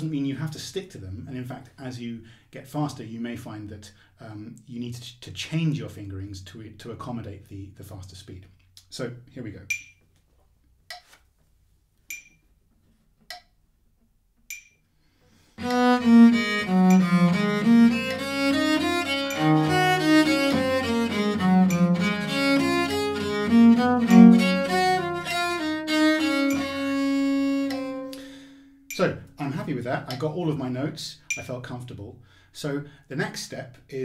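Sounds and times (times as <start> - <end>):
metronome clicks: 9.6 - 10.0, 10.9 - 11.1, 12.0 - 12.5, 13.2 - 13.6, 14.4 - 14.8, 15.6 - 29.4, 30.1 - 30.4, 31.2 - 31.6
bowed viola da gamba: 15.6 - 28.3.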